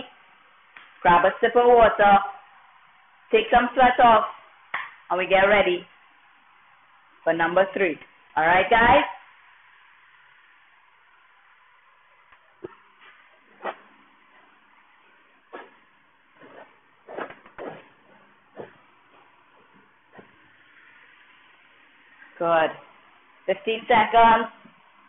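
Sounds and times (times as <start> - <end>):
footsteps on floor mat: 15.5 - 15.8.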